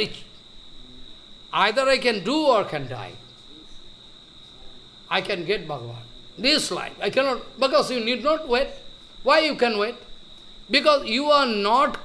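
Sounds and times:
man speaking: 0.0s - 0.3s, 1.5s - 3.3s, 5.1s - 10.0s, 10.7s - 12.0s.

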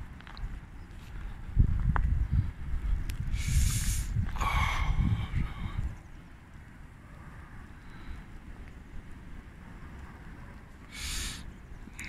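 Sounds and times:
wind rumbling on microphone: 0.0s - 12.0s
burst of hiss: 3.3s - 4.5s, 10.9s - 11.5s.

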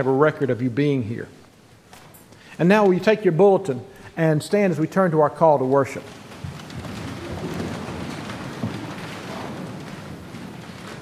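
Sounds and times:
crowd shuffling and rustling: 0.0s - 11.0s.

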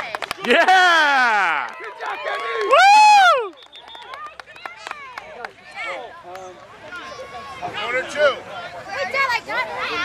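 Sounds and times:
spectator and player chatter: 0.0s - 10.0s
high-pitched celebratory shout: 0.8s - 4.2s.

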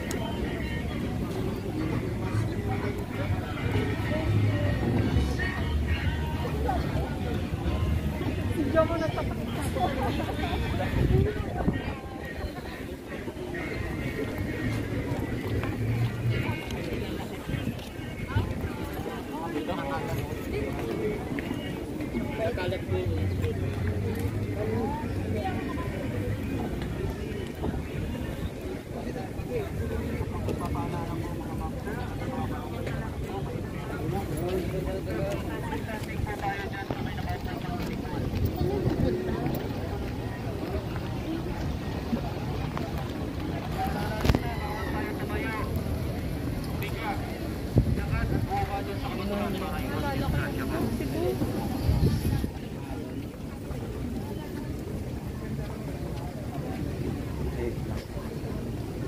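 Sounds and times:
people talking: 0.0s - 59.0s.

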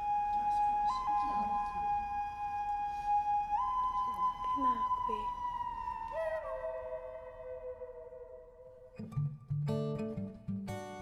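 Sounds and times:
long pure held notes: 0.0s - 9.2s.

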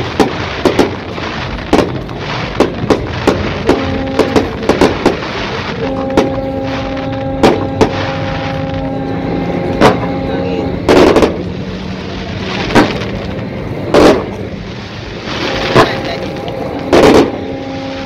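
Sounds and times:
fireworks bursting: 0.0s - 18.0s
steady low tone: 2.8s - 18.0s.

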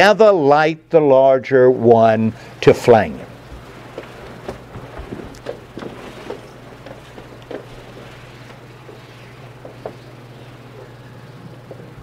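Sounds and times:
steady low hum: 0.0s - 12.0s
faint clicks and knocks: 3.4s - 12.0s.

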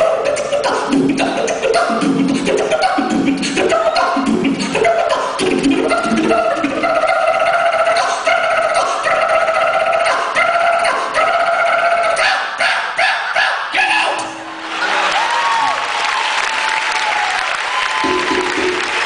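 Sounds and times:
vocal percussion: 0.0s - 14.4s, 18.0s - 19.0s
audience applauding: 14.6s - 19.0s.

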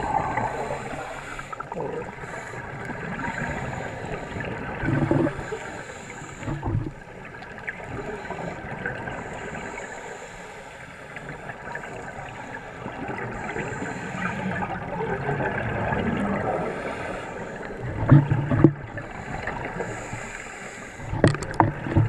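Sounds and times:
regulator bubbles underwater: 0.0s - 10.2s, 11.0s - 22.0s
crackling hiss of water: 0.0s - 22.0s.

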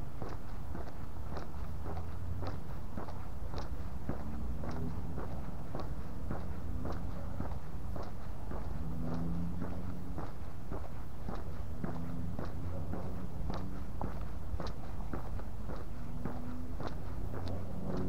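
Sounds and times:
footsteps walking: 0.0s - 18.0s
low steady rumble: 0.0s - 18.0s.

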